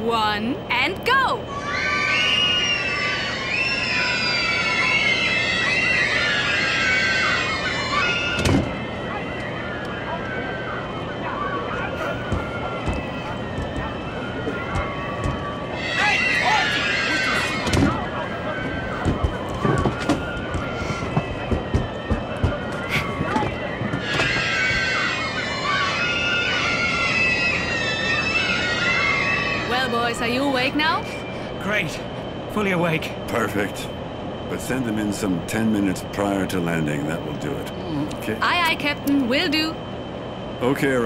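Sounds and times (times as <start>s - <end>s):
children shrieking and shouting: 1.3s - 31.0s.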